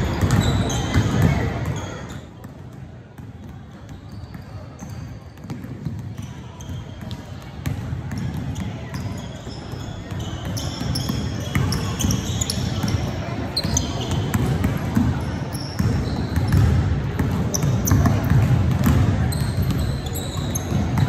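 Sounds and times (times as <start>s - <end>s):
sneaker squeaks: 0.0s - 2.5s, 3.4s - 7.4s, 8.1s - 21.0s
basketballs bouncing on hardwood: 0.0s - 21.0s
murmur of voices: 0.0s - 21.0s.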